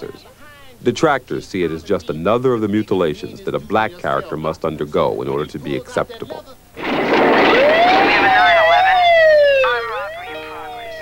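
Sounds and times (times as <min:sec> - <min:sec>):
police siren wailing: 0:06.8 - 0:11.0.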